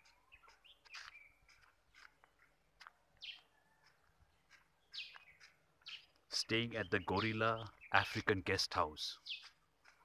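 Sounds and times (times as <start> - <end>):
faint bird chirps: 0.0 - 2.5.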